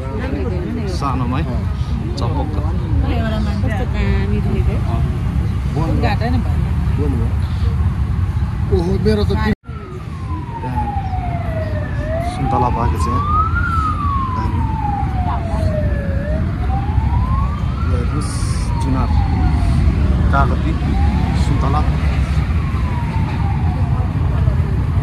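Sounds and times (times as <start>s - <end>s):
siren wailing: 9.2s - 25.0s.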